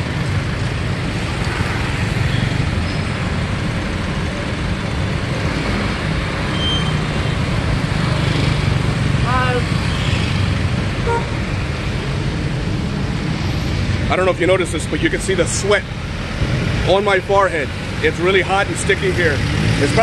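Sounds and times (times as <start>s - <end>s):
car and truck engines in traffic: 0.0s - 20.0s.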